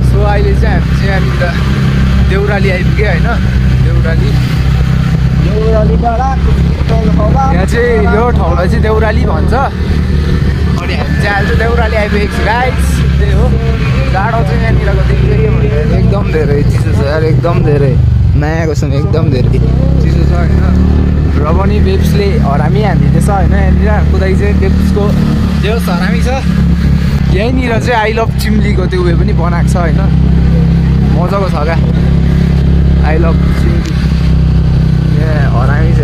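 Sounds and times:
people talking: 0.0s - 10.0s, 10.6s - 26.6s, 27.2s - 34.2s, 35.1s - 36.0s
motor scooter engine: 0.0s - 36.0s.

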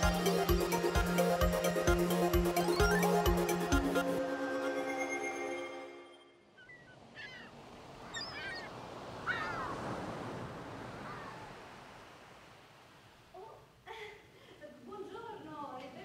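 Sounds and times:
gull calls: 6.6s - 9.9s, 10.9s - 11.6s
surf washing on beach: 7.0s - 13.4s.

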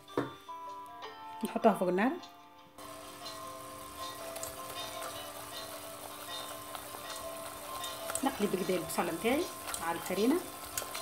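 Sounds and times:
background music: 0.0s - 11.0s
roux sizzling in a saucepan: 2.8s - 11.0s.

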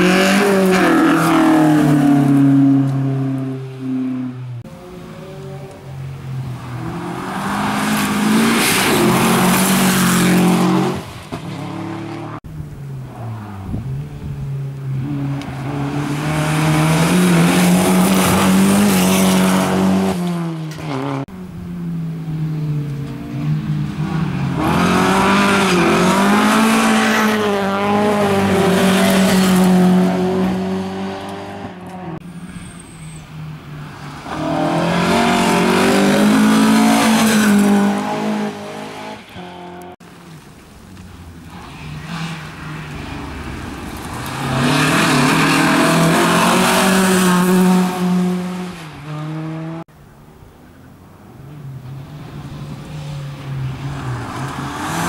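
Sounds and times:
rally cars passing at full throttle: 0.0s - 55.0s.

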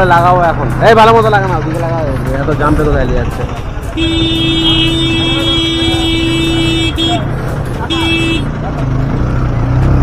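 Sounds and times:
vehicle horn: 3.9s - 8.5s.

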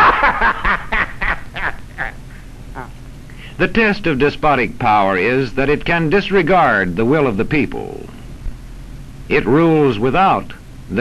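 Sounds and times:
person laughing: 0.0s - 3.0s.

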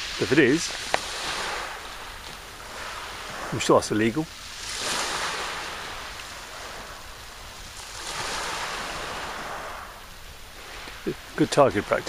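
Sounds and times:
waves washing onto shingle: 0.0s - 12.0s.

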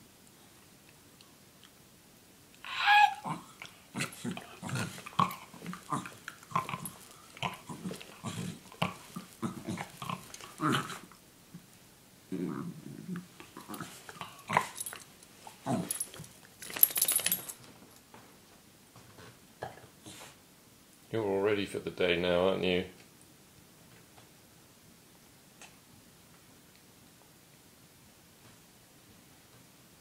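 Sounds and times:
dog grunting: 2.9s - 11.1s
bedding rustling: 13.4s - 18.0s.

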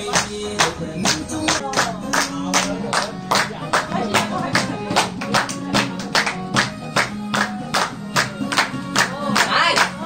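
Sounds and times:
dance music with singing: 0.0s - 10.0s.

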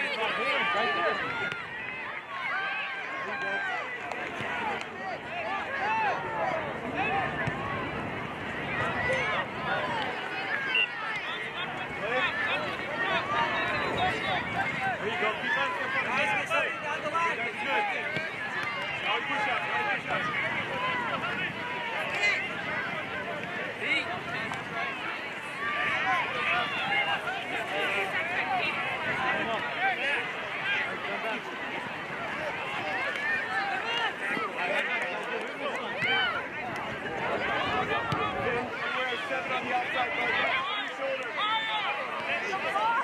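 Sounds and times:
crowd shouting and calling: 0.0s - 43.0s
outdoor background noise: 0.0s - 43.0s.

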